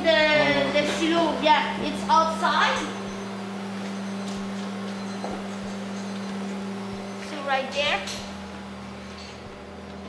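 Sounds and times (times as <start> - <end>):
machinery hum: 0.0 - 10.0.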